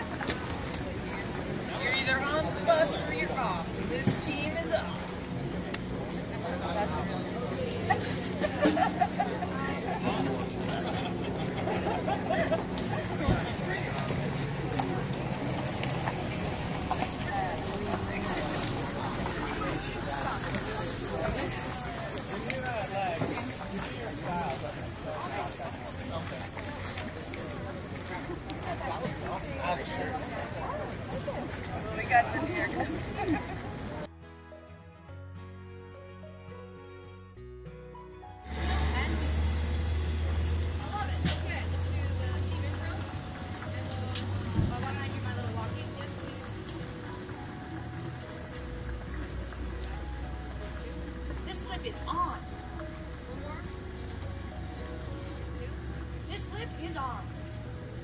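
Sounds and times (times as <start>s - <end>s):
faint background voices: 0.0s - 34.1s
outdoor background noise: 0.0s - 34.1s, 38.4s - 58.0s
people chattering: 0.0s - 34.1s, 38.4s - 58.0s.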